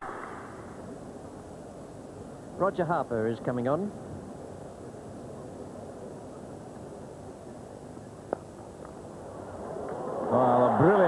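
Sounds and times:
crowd ambience: 3.9s - 11.0s.

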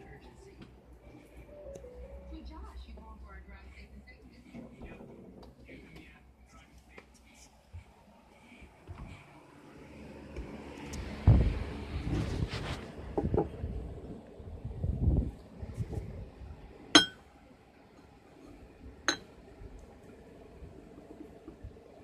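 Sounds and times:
rustling and low bumps: 10.4s - 16.5s
cup clinking: 17.0s - 17.2s, 19.1s - 19.3s.

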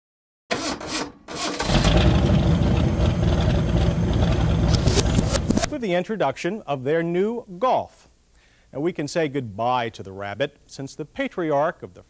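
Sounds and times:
car engine starting and running: 1.4s - 5.7s.

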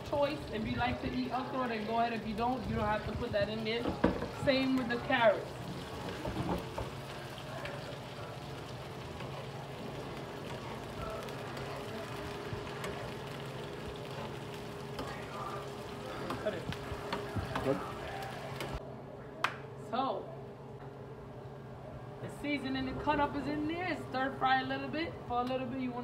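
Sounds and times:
vegetables sizzling in oil: 0.0s - 18.8s.

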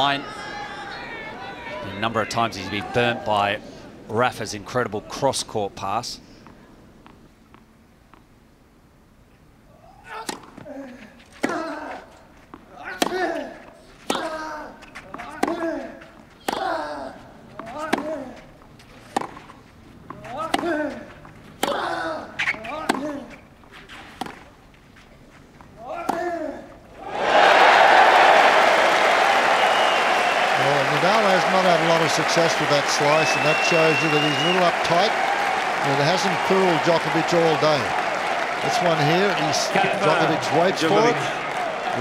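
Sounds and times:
racket striking tennis ball: 12.9s - 13.5s, 15.0s - 16.8s, 17.6s - 18.3s, 19.1s - 19.5s, 20.1s - 23.3s, 24.2s - 24.5s, 26.0s - 26.4s
crowd applause and cheering: 27.0s - 42.0s.

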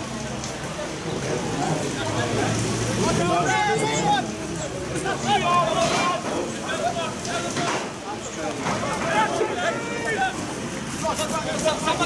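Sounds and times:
spectators talking: 0.0s - 12.0s.

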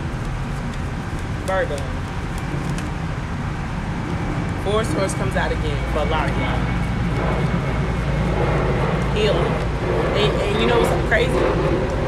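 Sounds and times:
cards ticking as handled: 0.0s - 3.0s
low outdoor rumble: 0.0s - 12.0s.

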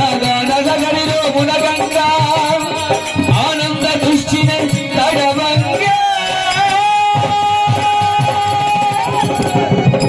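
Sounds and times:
drum beat: 0.0s - 10.0s
electronic keyboard: 0.0s - 10.0s.

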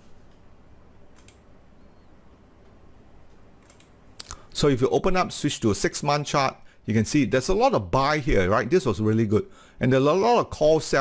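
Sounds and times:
faint quick clicks: 1.1s - 1.4s, 2.6s - 4.5s.

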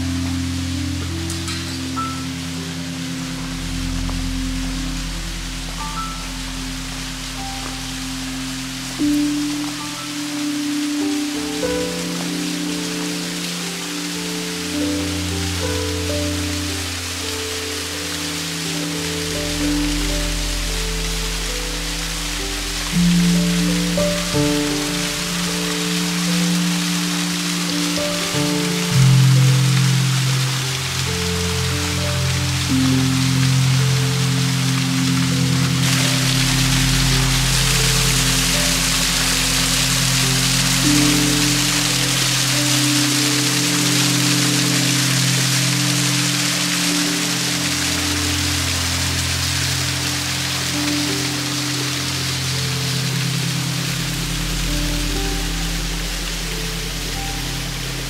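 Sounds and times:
slow background music: 0.0s - 58.0s
small waterfall rushing: 0.0s - 58.0s.

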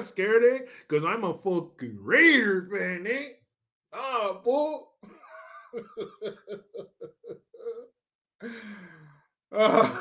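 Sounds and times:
man laughing: 5.0s - 8.0s, 9.6s - 10.0s.

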